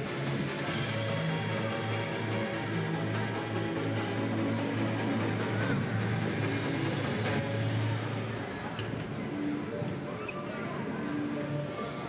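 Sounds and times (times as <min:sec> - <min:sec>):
crowd hubbub: 0:00.0 - 0:12.0.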